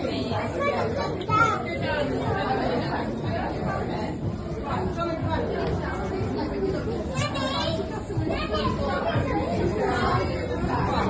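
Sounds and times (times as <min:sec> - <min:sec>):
murmur of overlapping voices: 0:00.0 - 0:11.0.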